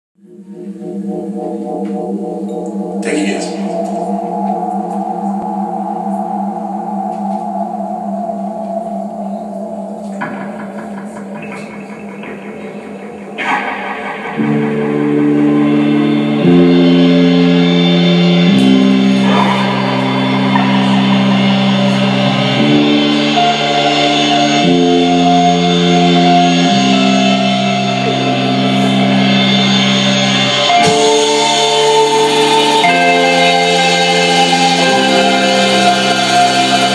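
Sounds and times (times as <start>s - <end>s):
bass notes: 0.2s - 36.9s
electric guitar chords: 0.2s - 36.9s.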